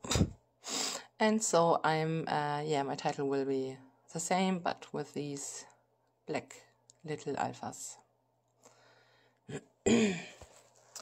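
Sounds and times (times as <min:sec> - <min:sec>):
woman clearing her throat: 0:09.5 - 0:10.4.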